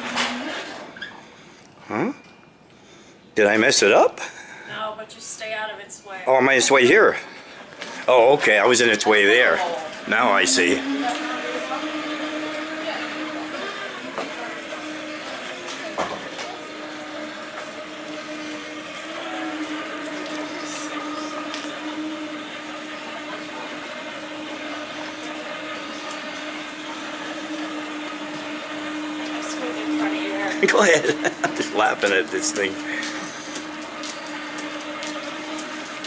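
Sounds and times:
steady machine hum: 0:06.2 - 0:36.0
faint voices: 0:08.0 - 0:35.5.

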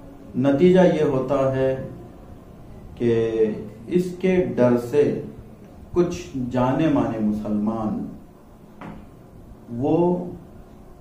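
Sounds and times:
man narrating: 0:00.4 - 0:01.9, 0:03.0 - 0:05.4, 0:06.0 - 0:08.2, 0:09.7 - 0:10.4.

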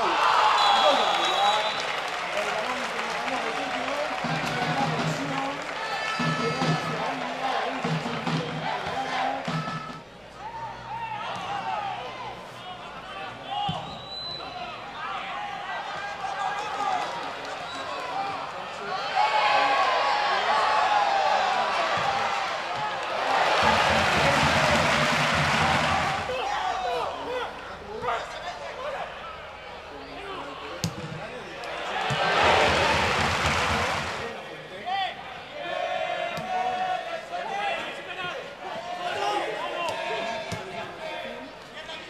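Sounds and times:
stadium crowd shouting and chanting: 0:00.0 - 0:42.0.

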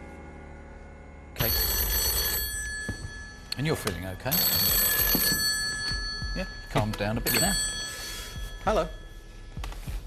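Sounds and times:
telephone bell ringing: 0:01.4 - 0:09.4.

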